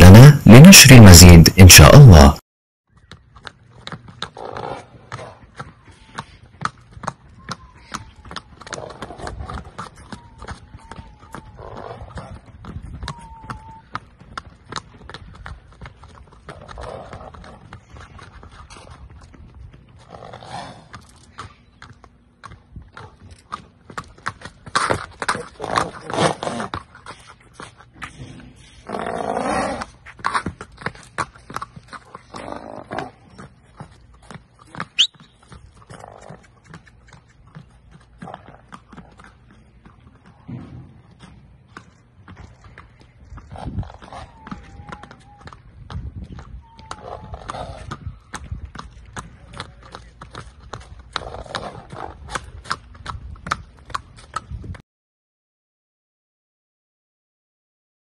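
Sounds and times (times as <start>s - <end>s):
hooves clip-clopping on pavement: 2.9s - 54.8s.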